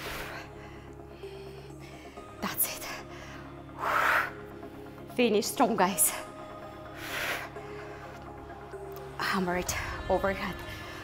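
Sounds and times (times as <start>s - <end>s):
woman's forceful breath out: 3.1s - 4.9s.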